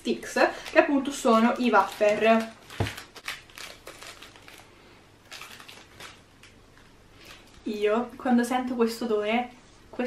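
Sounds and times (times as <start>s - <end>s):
plastic wrapper crinkling: 0.5s - 7.7s.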